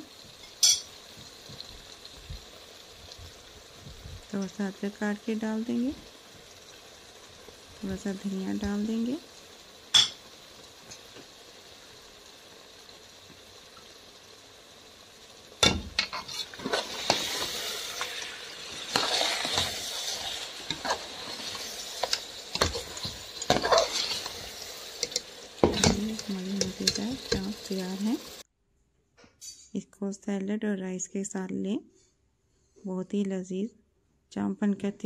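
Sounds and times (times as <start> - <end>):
gravy sizzling: 0.0 - 28.5
metal spatula scraping a pot: 16.0 - 27.5.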